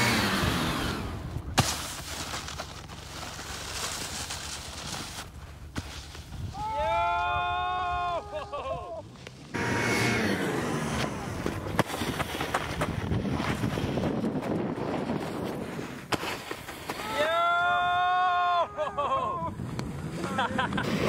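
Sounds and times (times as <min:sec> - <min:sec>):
snowboard scraping over snow: 0:00.0 - 0:07.2, 0:08.6 - 0:17.9, 0:19.6 - 0:21.0
person yelling: 0:06.5 - 0:09.0, 0:17.0 - 0:19.5
wind on microphone: 0:12.6 - 0:16.0.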